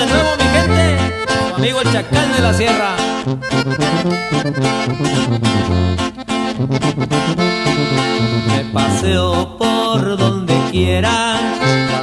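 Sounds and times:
bass line: 0.0s - 12.0s
button accordion melody: 0.0s - 12.0s
strummed guitar: 0.0s - 12.0s.

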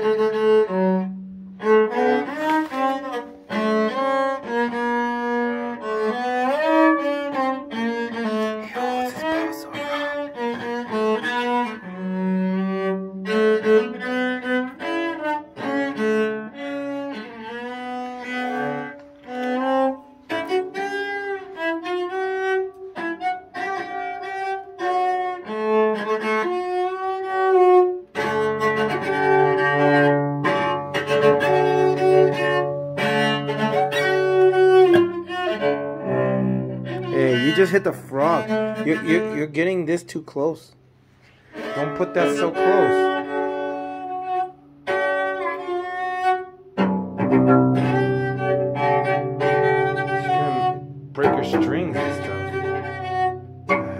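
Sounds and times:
cello melody: 0.0s - 53.9s.

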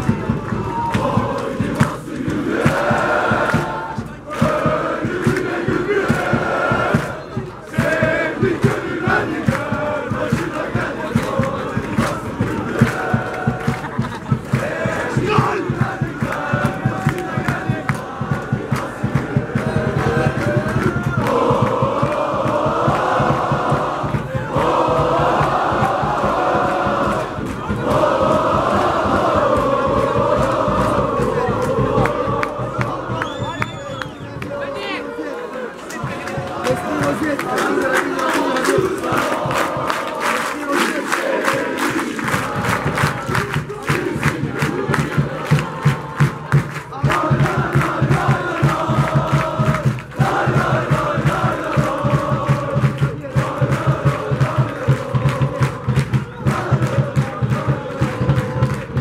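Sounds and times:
quick steady beat: 0.0s - 34.6s, 36.0s - 59.0s
crowd chanting: 0.0s - 59.0s.

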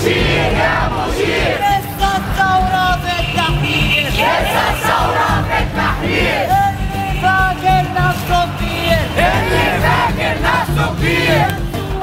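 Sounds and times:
crowd of protesters shouting: 0.0s - 2.4s, 3.6s - 6.7s, 7.9s - 11.6s.

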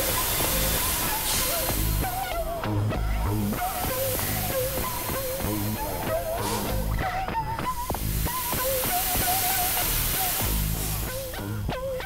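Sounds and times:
low bass notes: 1.6s - 4.8s.

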